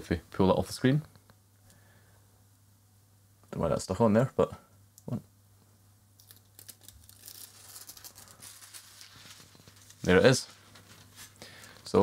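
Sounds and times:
paper sheet crackling and rustling: 6.2s - 11.9s.

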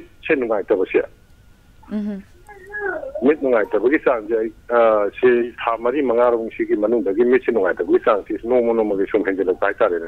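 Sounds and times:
person talking over telephone: 2.0s - 5.9s, 6.7s - 10.0s.

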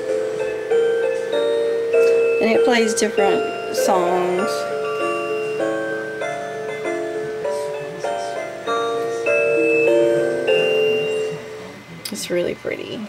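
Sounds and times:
chime-like electronic melody: 0.0s - 11.8s.

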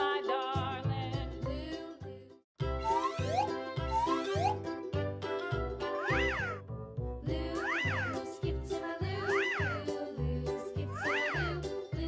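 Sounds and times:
children's music with steady beat: 2.6s - 12.0s.

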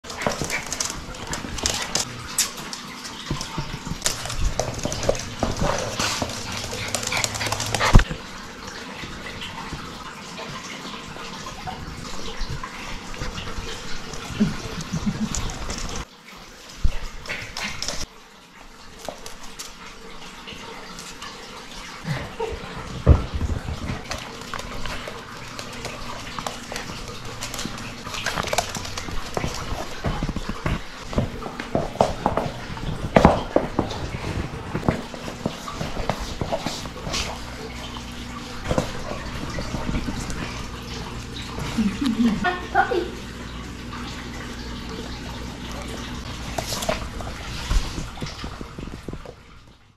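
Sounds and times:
paws clicking on hard floor: 0.0s - 16.1s, 16.8s - 18.1s, 18.9s - 20.0s, 22.1s - 42.3s, 44.0s - 49.9s.

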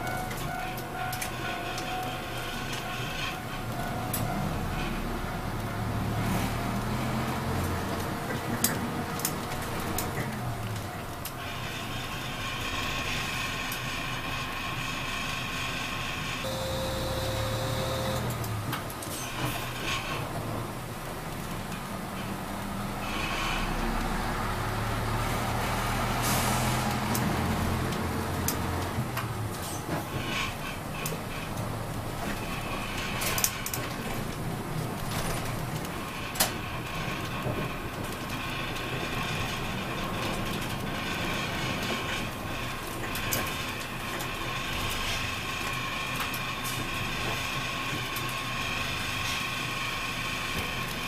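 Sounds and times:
bus engine rising and falling: 0.0s - 51.0s
air brakes hissing: 26.2s - 26.9s.

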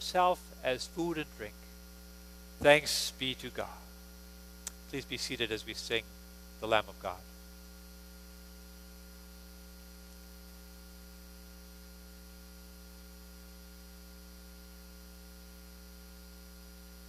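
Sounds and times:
electrical mains hum: 0.0s - 17.0s.

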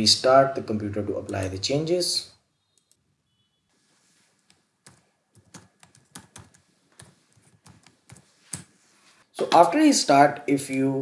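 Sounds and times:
keyboard typing: 2.7s - 3.0s, 4.5s - 8.7s.

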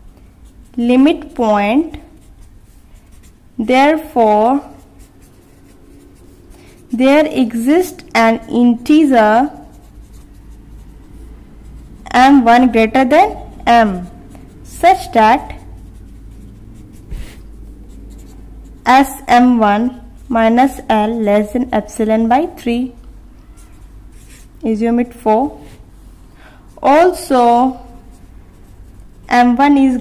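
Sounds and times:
pen scratching on paper: 0.0s - 24.6s, 26.7s - 30.0s
woman speaking: 0.8s - 2.0s, 3.6s - 4.8s, 6.9s - 9.7s, 12.1s - 15.6s, 18.9s - 23.0s, 24.6s - 25.7s, 26.8s - 28.0s, 29.3s - 30.0s.

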